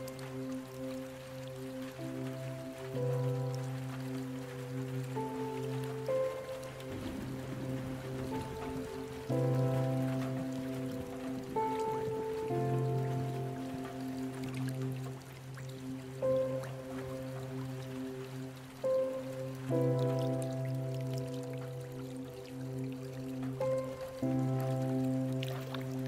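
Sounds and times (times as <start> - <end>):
calm instrumental sleep music: 0.0 - 26.0
running water and drops: 0.0 - 26.0.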